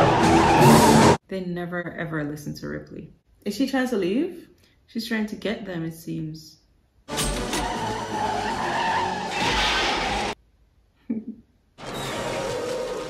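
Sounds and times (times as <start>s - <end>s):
tyres skidding: 0.0s - 1.2s, 7.1s - 10.4s, 11.8s - 13.0s
film score music: 7.1s - 10.4s.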